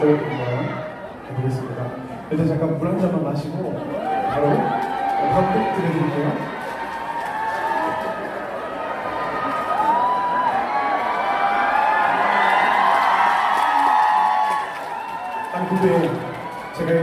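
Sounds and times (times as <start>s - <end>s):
fans cheering and calling out: 3.6s - 17.0s.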